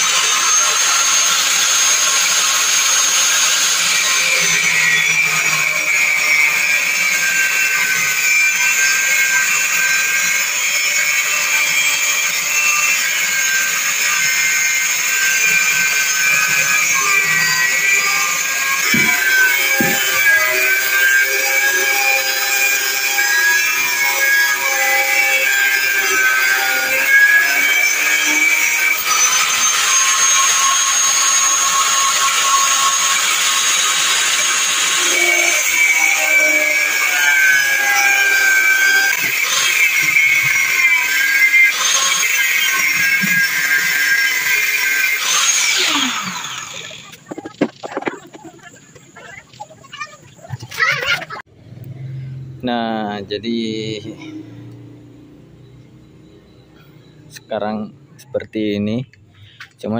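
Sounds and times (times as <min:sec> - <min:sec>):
angle grinder cutting metal: 0:00.0 - 0:51.4.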